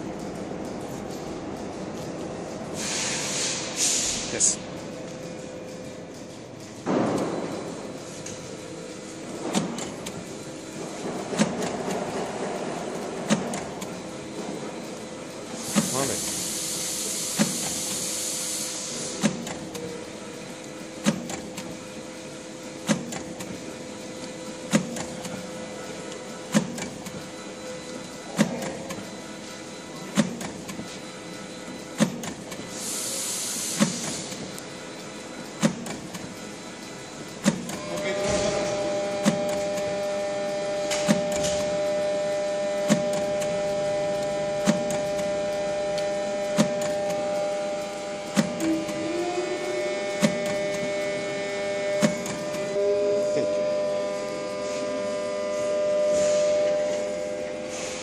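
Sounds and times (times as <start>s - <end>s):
machine clicking: 0.0s - 29.4s, 30.0s - 42.1s, 42.7s - 49.1s, 49.9s - 51.2s, 51.8s - 52.8s
motor whine: 7.6s - 58.0s.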